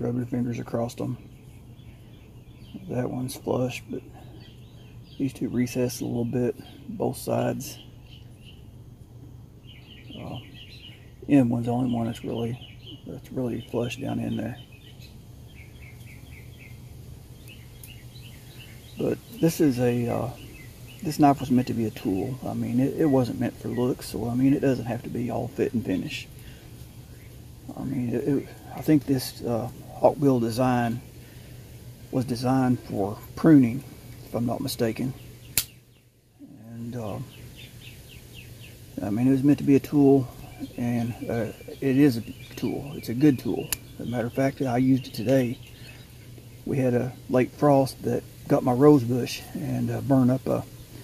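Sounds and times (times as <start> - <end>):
faint bird chirping: 0.0 - 51.0
low background hum: 0.0 - 51.0.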